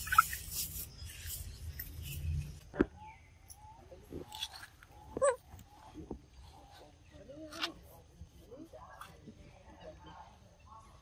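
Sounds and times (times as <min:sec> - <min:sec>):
monkey squeaking and squealing: 0:00.0 - 0:01.5, 0:04.3 - 0:05.6.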